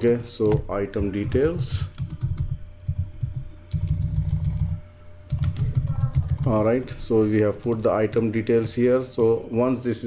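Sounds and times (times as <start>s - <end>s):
computer keyboard typing: 0.0s - 9.4s.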